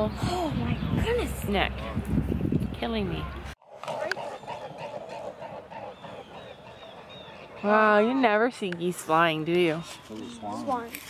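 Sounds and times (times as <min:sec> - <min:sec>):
swans calling: 0:03.6 - 0:10.8.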